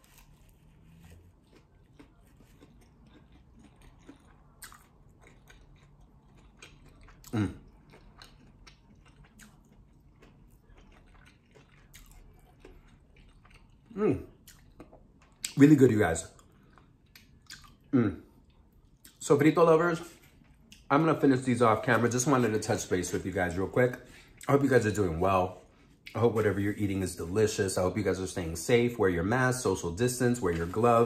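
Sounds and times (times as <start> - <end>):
wet chewing mouth clicks: 1.5 - 15.6, 16.4 - 17.9.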